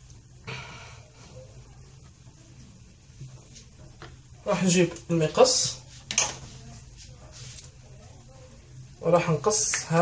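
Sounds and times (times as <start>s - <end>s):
dry pastry rustling: 2.1s - 10.0s.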